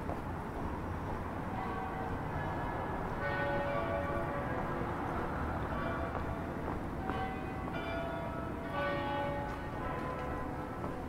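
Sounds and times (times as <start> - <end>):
low rumble of street noise: 0.0 - 11.0
church bells ringing: 1.5 - 11.0.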